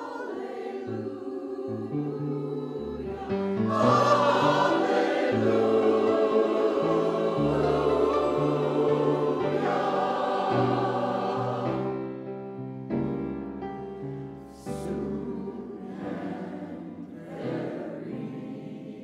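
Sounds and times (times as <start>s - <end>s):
church choir singing: 0.0s - 19.0s.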